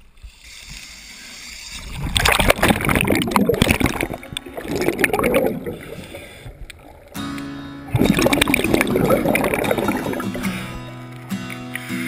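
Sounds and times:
water sloshing and gurgling: 1.7 - 7.3, 7.9 - 11.3
small splashes: 1.8 - 7.2, 7.9 - 11.9.

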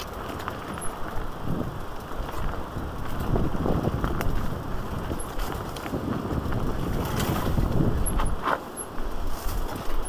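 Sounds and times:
wind buffeting microphone: 0.0 - 8.4
bike rumbling and rattling: 0.0 - 10.0.

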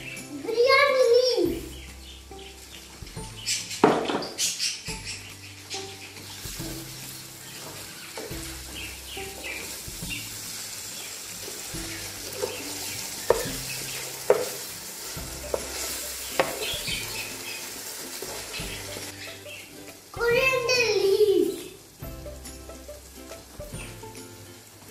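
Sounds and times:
masala sizzling in oil: 0.0 - 3.8, 4.4 - 24.9
spatula knocking against pot: 13.2 - 13.6, 14.3 - 14.6, 15.5 - 17.1.

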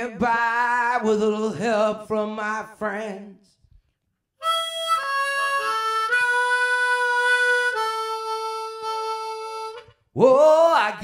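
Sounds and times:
harmonica playing: 4.4 - 10.1
person singing: 10.2 - 11.0.

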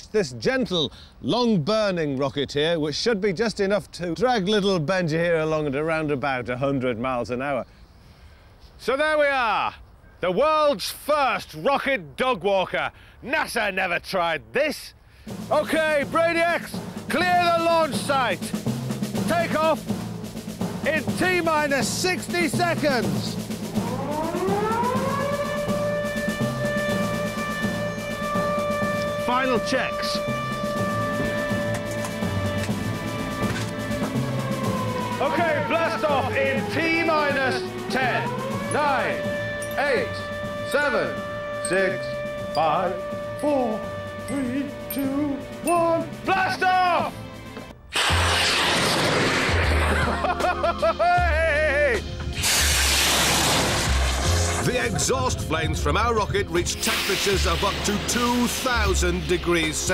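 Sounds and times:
music with drum beat: 15.3 - 41.2, 50.2 - 52.4, 53.9 - 59.9
warning siren winding up: 23.6 - 45.2
rocket exhaust hiss: 47.9 - 50.2, 52.3 - 54.8, 56.8 - 58.5.

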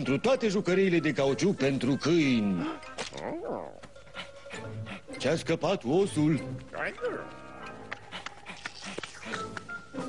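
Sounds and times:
cartoon background music: 0.0 - 10.0
animated dog vocal sounds: 2.6 - 5.0.

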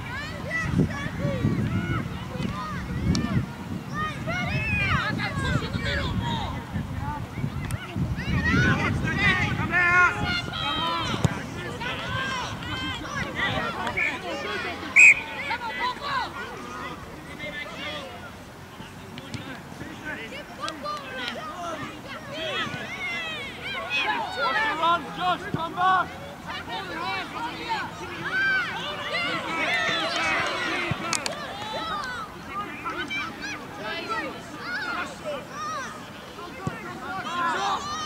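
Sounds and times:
people shouting and calling: 7.8 - 18.2, 20.7 - 38.0.

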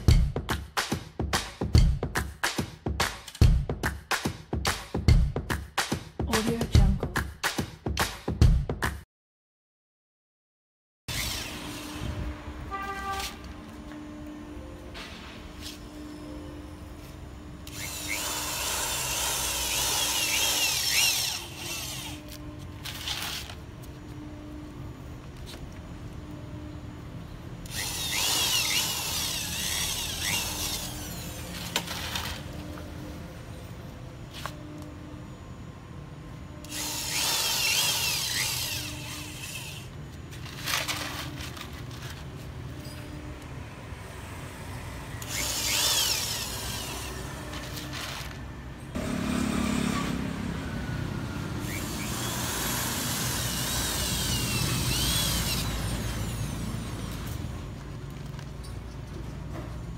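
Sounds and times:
cordless drill driving a screw: 11.1 - 12.1, 17.6 - 22.4, 27.6 - 32.4, 36.6 - 40.0, 45.2 - 48.4, 51.6 - 57.1.

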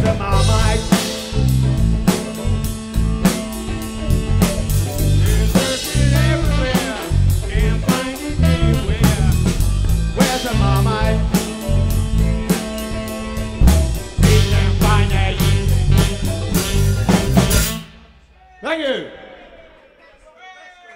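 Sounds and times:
electric guitars: 0.0 - 17.9
bass guitar: 0.0 - 18.0
drum kit beat: 0.0 - 18.2.

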